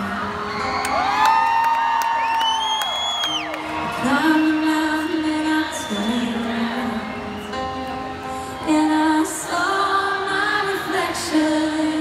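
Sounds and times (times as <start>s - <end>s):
audience whooping: 0.2s - 6.2s
woman singing: 3.9s - 7.6s, 8.5s - 12.0s
crowd singing along: 4.0s - 8.0s, 8.6s - 12.0s.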